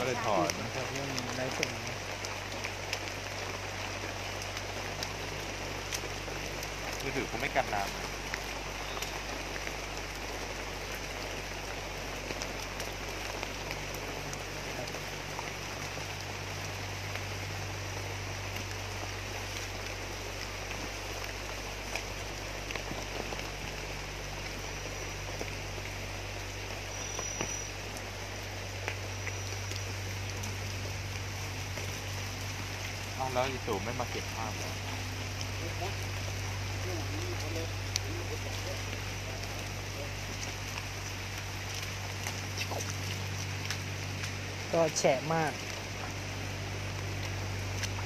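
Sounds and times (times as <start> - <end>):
low steady hum: 0.0 - 48.0
rain falling: 0.0 - 48.0.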